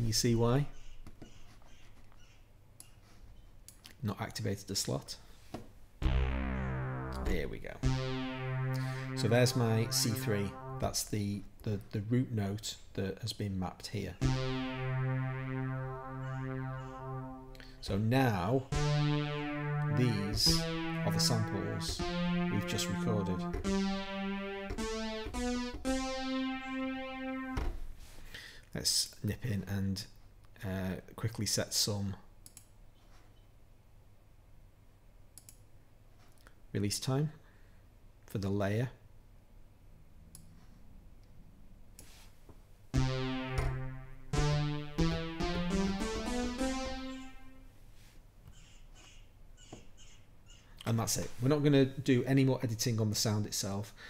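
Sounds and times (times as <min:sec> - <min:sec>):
buzzy synth note held: 0:06.0 - 0:11.0, 0:14.2 - 0:27.8, 0:43.0 - 0:47.7
computer mouse click: 0:35.4 - 0:35.6.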